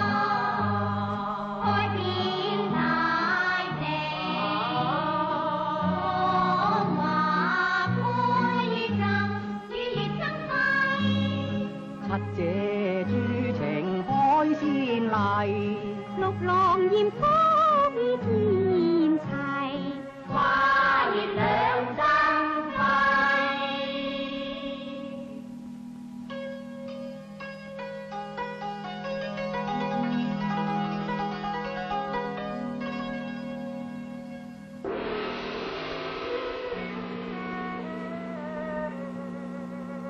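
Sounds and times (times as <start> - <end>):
person singing: 0.0 - 25.4
instrumental accompaniment: 0.0 - 40.0.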